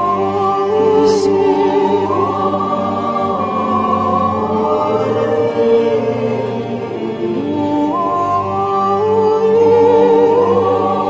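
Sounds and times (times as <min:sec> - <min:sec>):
slow devotional choral music: 0:00.0 - 0:11.0.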